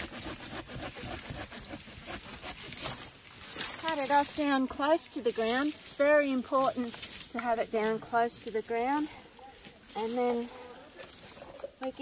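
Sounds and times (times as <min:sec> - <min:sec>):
hand saw cutting woody stem: 0:00.0 - 0:04.2.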